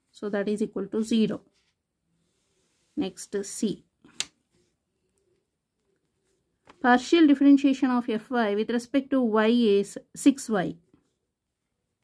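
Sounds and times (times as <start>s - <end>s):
person speaking: 0.1s - 1.5s, 3.0s - 4.3s, 6.7s - 10.8s.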